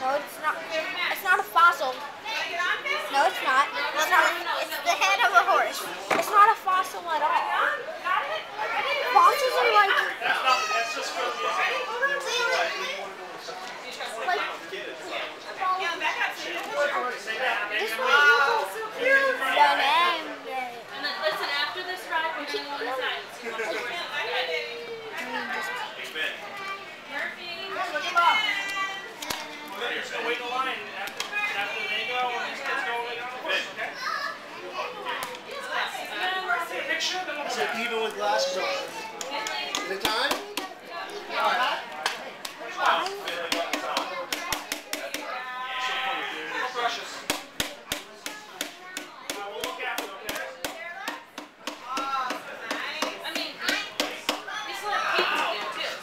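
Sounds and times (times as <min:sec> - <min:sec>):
children chattering: 0:00.0 - 0:56.0.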